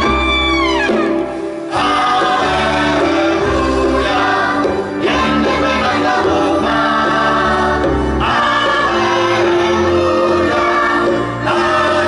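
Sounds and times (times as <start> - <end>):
live band playing: 0.0 - 12.0
children's choir singing: 1.7 - 12.0.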